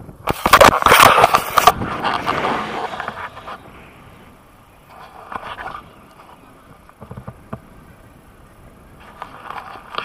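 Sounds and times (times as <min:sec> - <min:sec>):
wind buffeting: 0:01.0 - 0:10.0.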